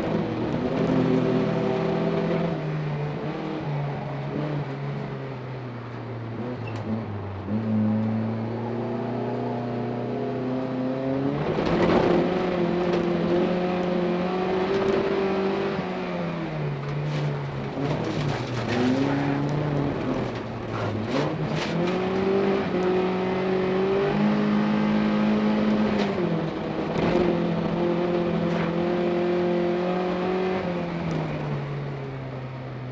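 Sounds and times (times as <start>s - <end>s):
car engine revving: 6.3s - 31.5s.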